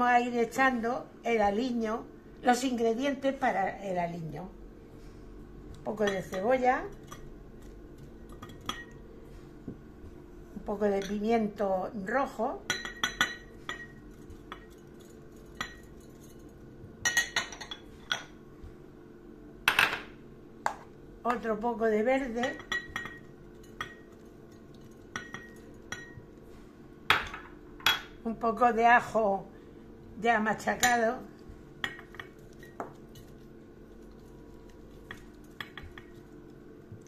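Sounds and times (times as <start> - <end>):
spoon clinking against glass bowl: 8.3 - 9.0, 12.7 - 18.3, 22.4 - 26.3, 31.8 - 33.4.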